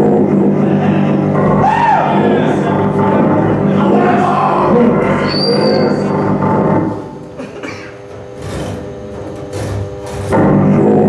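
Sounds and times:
sustained drone: 0.0 - 11.0.

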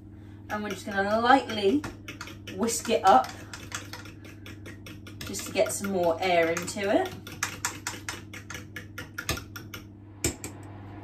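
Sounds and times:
fork whisking in glass jug: 0.5 - 9.8.

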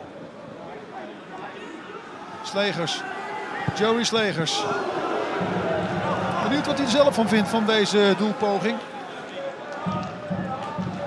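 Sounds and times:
low rhythmic thumps: 5.3 - 7.5.

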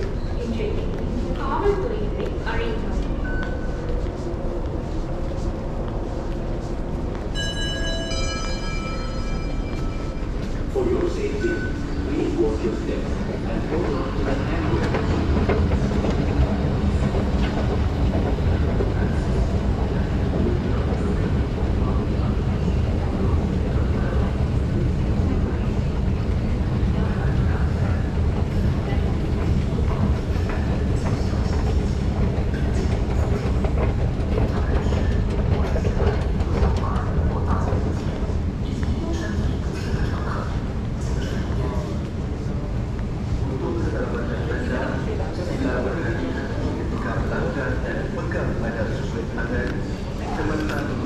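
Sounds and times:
low rumble of underground station: 0.0 - 51.0
faint voices: 8.5 - 51.0.

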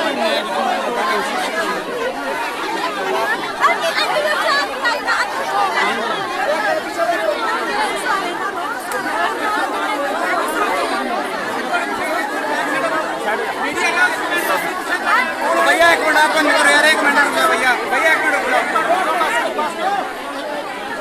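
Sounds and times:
crowd talking and calling out: 0.0 - 21.0.

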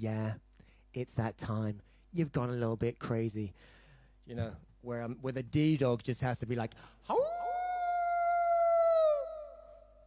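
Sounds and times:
man howling like a dog: 7.1 - 10.0.

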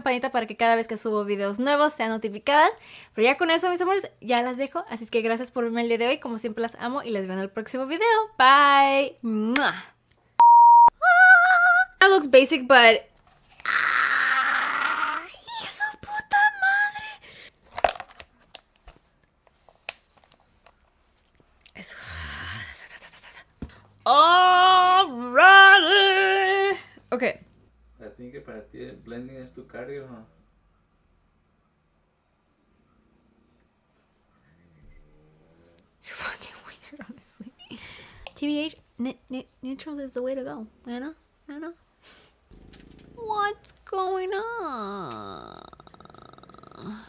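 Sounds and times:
woman screaming: 13.6 - 15.7
woman whispering: 21.7 - 23.6, 36.0 - 37.4.

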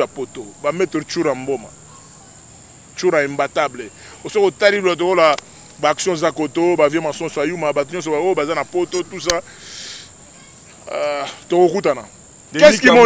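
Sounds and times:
man talking: 0.0 - 1.7, 3.0 - 9.5, 10.9 - 13.0
crickets chirring: 0.0 - 13.0.

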